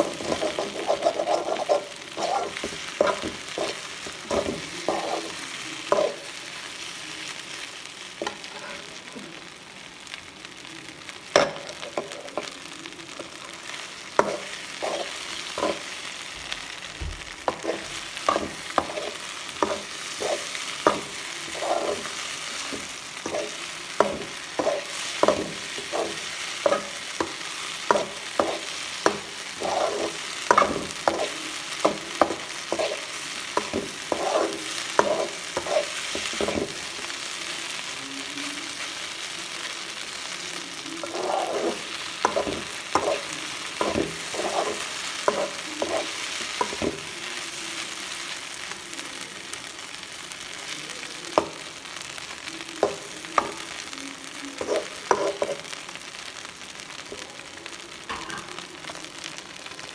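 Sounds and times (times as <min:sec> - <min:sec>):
metal spatula scraping wok: 0:00.0 - 0:06.3, 0:08.2 - 0:08.9, 0:14.1 - 0:16.0, 0:17.4 - 0:36.8, 0:41.0 - 0:47.1, 0:54.6 - 0:55.6
frying sizzle: 0:00.0 - 0:59.9.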